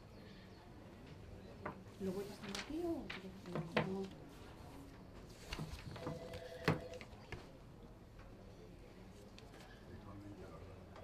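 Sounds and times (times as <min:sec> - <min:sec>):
paper sheets handled: 0:02.1 - 0:04.2, 0:05.2 - 0:06.2.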